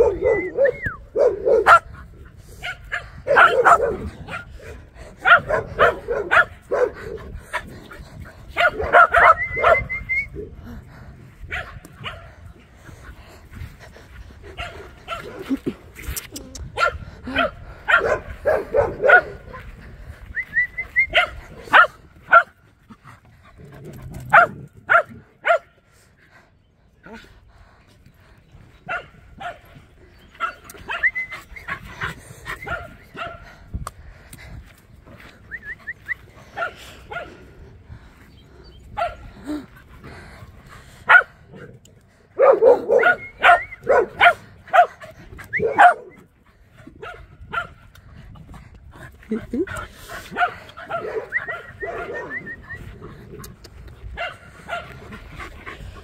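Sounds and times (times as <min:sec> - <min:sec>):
dogs barking: 0:00.0 - 0:07.7, 0:08.5 - 0:09.9, 0:11.5 - 0:12.4, 0:14.5 - 0:15.6, 0:16.8 - 0:19.7, 0:21.1 - 0:22.6, 0:24.2 - 0:25.8, 0:28.8 - 0:33.5, 0:36.4 - 0:37.5, 0:38.9 - 0:39.6, 0:41.0 - 0:41.7, 0:42.4 - 0:46.2, 0:46.9 - 0:47.9, 0:50.2 - 0:52.5, 0:54.1 - 0:55.5.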